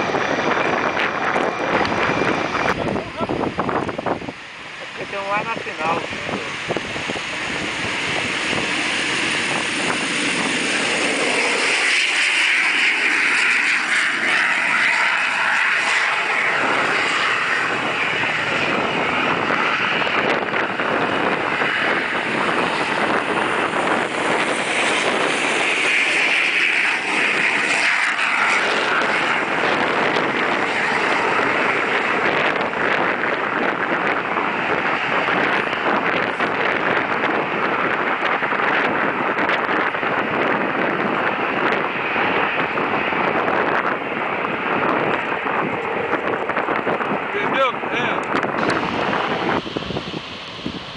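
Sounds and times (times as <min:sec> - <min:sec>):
jet engines at high power: 0:00.0 - 0:50.9.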